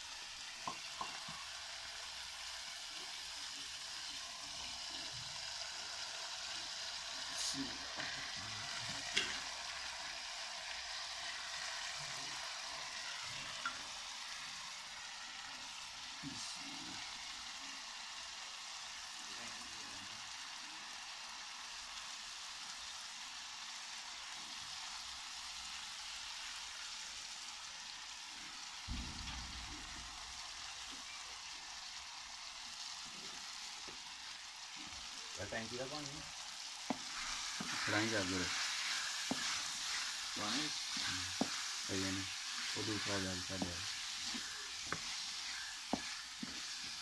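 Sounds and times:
food sizzling in a pan: 0.0 - 47.0.

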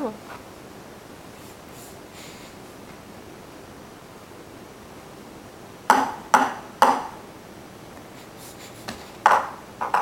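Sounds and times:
cup knocking on wooden table: 9.3 - 10.0.

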